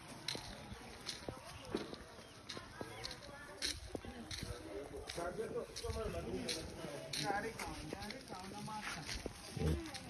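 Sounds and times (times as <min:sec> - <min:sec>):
people talking faintly: 0:00.0 - 0:10.0.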